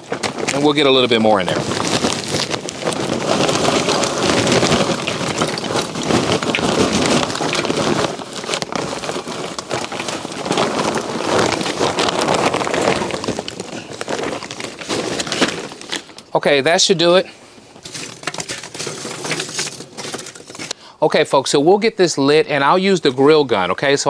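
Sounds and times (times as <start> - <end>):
charcoal clattering onto grate: 1.9 - 8.7, 17.8 - 20.8.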